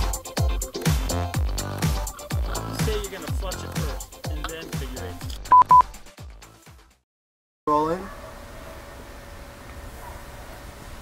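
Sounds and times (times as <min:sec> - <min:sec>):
short electronic beeps: 0:05.5 - 0:05.9.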